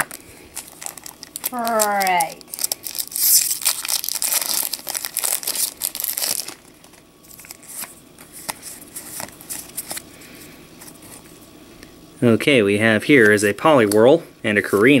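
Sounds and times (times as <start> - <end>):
foil wrapper tearing and crinkling: 0.0 - 10.0.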